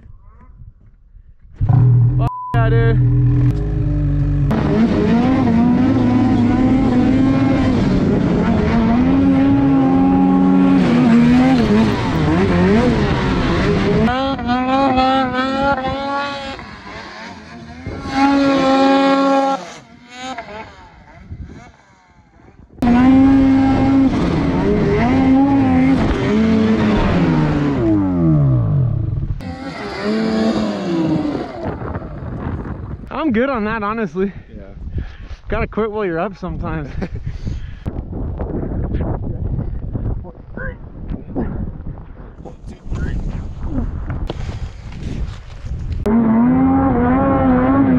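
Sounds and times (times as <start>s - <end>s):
snowmobile engines revving: 1.6s - 32.6s, 46.0s - 47.9s.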